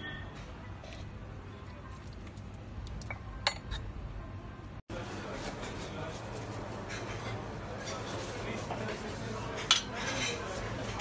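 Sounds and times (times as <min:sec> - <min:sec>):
faint kitchen clatter: 0:00.0 - 0:04.2, 0:04.9 - 0:11.0
utensil clinking against dish: 0:09.5 - 0:11.0.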